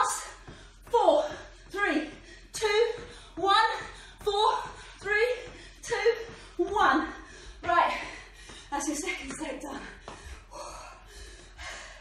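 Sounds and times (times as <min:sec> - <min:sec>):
woman gasping and panting: 0:00.1 - 0:12.0.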